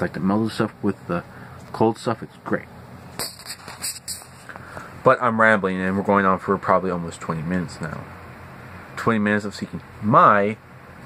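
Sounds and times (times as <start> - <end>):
soft hissing rustles: 3.1 - 5.1.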